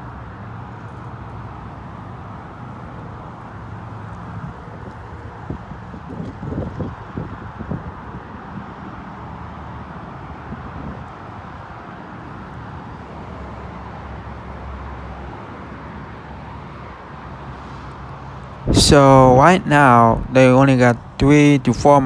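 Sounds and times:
distant road traffic: 0.0s - 22.0s
wind noise on microphone: 4.4s - 9.0s, 10.4s - 11.4s, 18.6s - 22.0s
soft low thumps: 18.7s - 20.4s.

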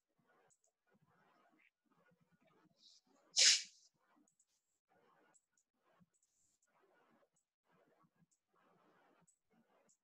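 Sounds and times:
person sneezing: 3.4s - 3.7s.

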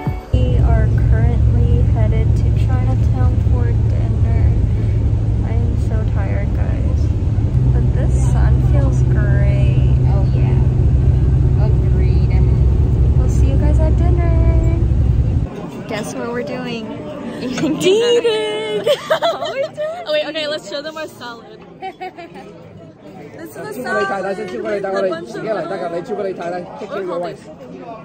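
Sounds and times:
bus engine and road rumble: 0.0s - 15.6s
passengers talking faintly: 0.0s - 28.0s.

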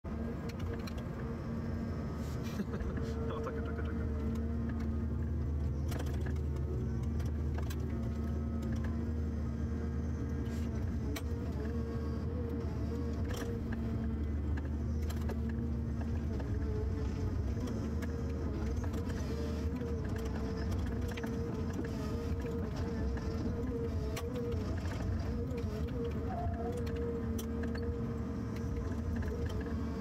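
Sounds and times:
harvester engine drone with whine: 0.0s - 30.0s.

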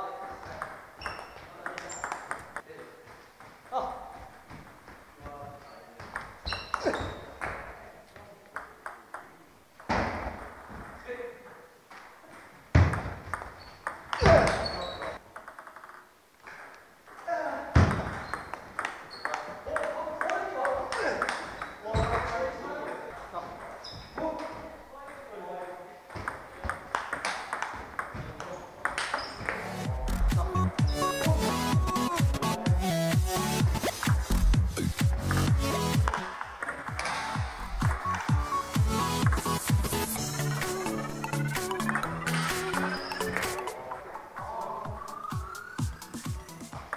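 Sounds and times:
hard table tennis hits: 0.4s - 3.6s, 6.0s - 7.7s, 12.3s - 14.8s, 15.4s - 22.4s, 26.1s - 29.6s, 36.1s - 37.6s.

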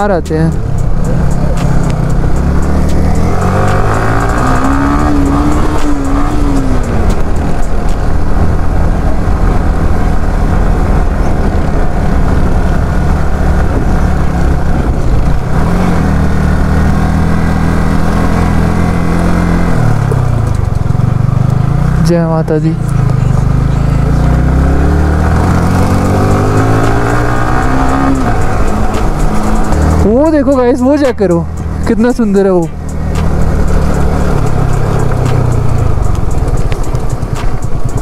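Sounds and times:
motorcycle engine revving: 0.0s - 38.0s.

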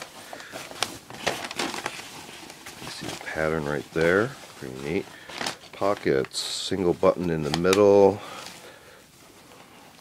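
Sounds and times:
cloth shirt rustling: 0.0s - 10.0s.

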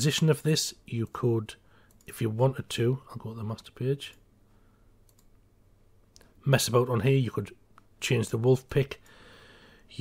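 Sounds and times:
computer mouse clicks: 1.8s - 2.2s, 5.0s - 5.4s.

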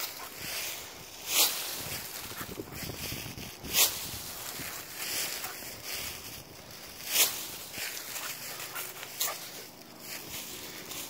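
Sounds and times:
rustle of dry leaves: 0.0s - 11.0s.

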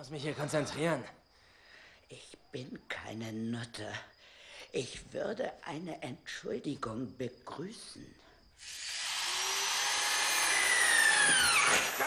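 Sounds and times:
power drill whining: 8.6s - 12.0s.

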